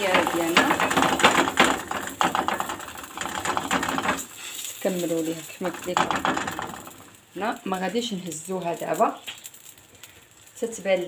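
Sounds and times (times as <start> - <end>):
dough sizzling in oil: 0.0 - 11.0.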